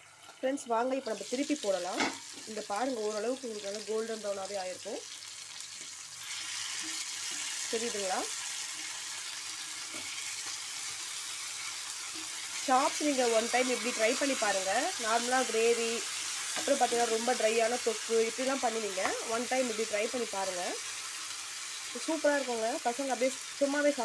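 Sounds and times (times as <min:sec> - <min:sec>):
meat sizzling in oil: 0:00.0 - 0:24.0
spatula turning meat: 0:05.6 - 0:19.7.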